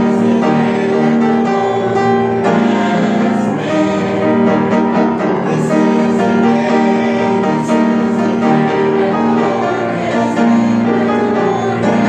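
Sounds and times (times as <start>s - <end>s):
congregation singing a hymn: 0.0s - 12.0s
piano accompaniment: 0.0s - 12.0s.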